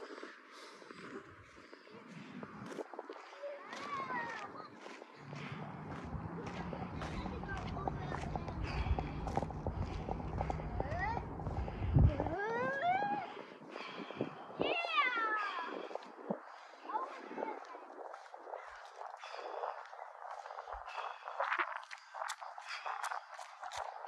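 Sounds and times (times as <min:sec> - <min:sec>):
low rumble with ticking: 0:05.2 - 0:12.7.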